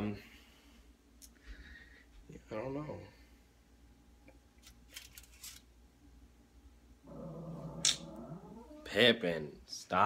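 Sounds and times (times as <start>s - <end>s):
dog growling: 7.0s - 9.0s.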